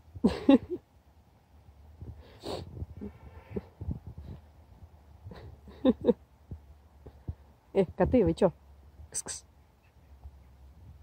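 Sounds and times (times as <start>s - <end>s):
soft low thuds: 3.6s - 8.4s.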